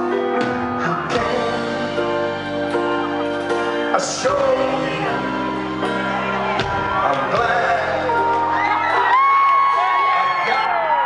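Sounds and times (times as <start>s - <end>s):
band music: 0.0s - 11.0s
crowd cheering and whooping: 2.1s - 11.0s.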